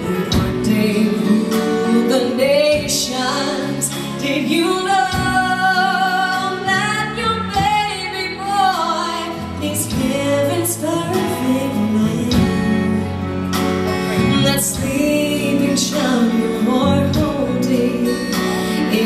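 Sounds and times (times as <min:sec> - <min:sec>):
guitar: 0:00.0 - 0:19.0
woman singing: 0:00.0 - 0:19.0.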